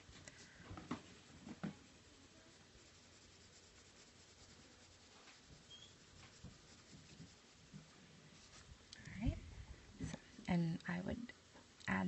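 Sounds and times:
colored pencil scratching on paper: 0.4s - 8.7s.

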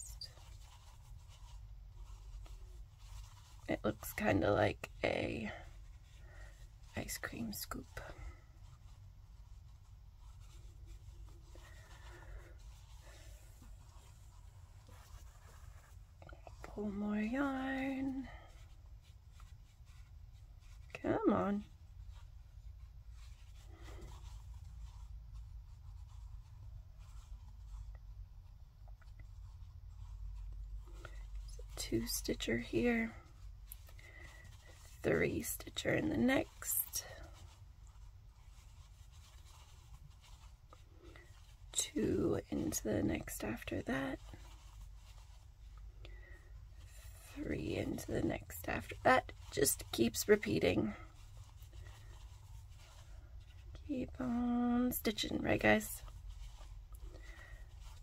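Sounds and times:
low steady hum: 0.0s - 58.0s
yarn rubbing on crochet hook: 0.0s - 58.0s.

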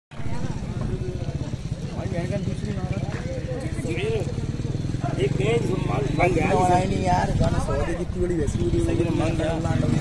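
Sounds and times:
people talking: 0.1s - 10.0s.

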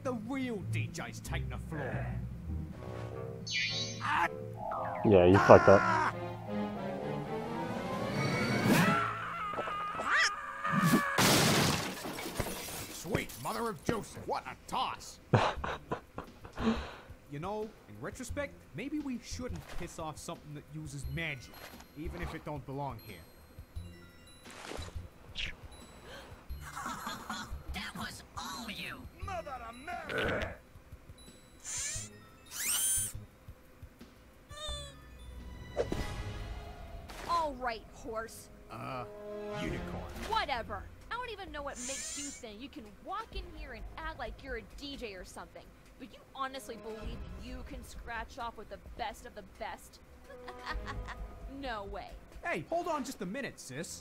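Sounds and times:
squeaky cartoon vocal sounds: 3.5s - 4.3s, 5.1s - 6.1s, 31.6s - 33.2s, 34.5s - 35.0s, 41.7s - 42.5s
short cry: 5.3s - 6.2s
loud crash with shattering: 11.2s - 12.9s
steady high hum: 36.4s - 52.7s.

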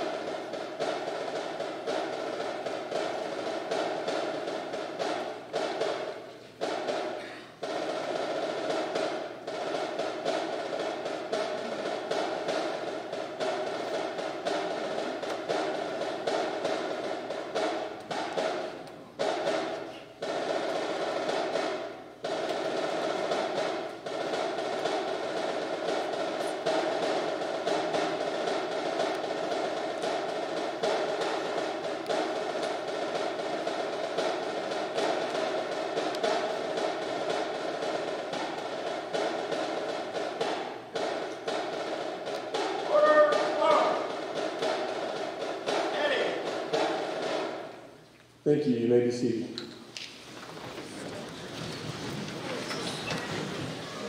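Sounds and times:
snare drum cadence: 0.0s - 54.0s.

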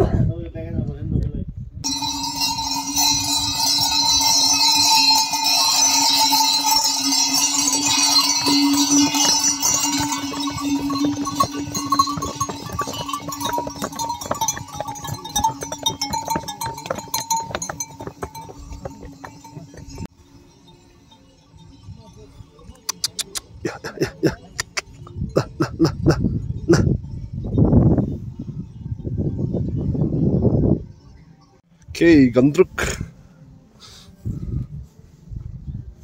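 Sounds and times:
clinking: 1.8s - 23.0s
hooves clattering on stone: 1.8s - 26.9s
mule bells ringing: 1.8s - 28.0s.

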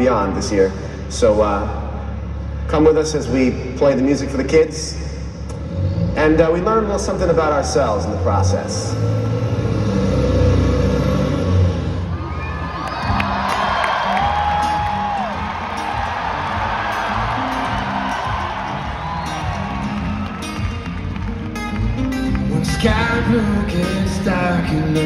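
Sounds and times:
low music: 11.5s - 25.0s
crowd cheering and whistling: 12.1s - 23.2s.

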